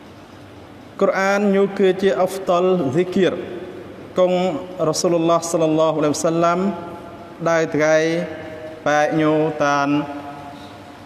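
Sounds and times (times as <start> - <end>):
man chanting: 4.2 - 10.6.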